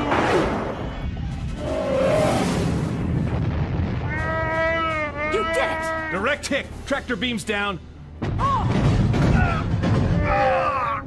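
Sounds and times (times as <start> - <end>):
missile strike explosions: 0.0 - 5.1.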